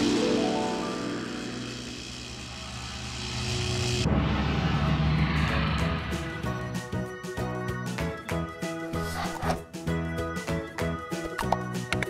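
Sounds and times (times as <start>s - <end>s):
low drone: 0.0s - 7.8s.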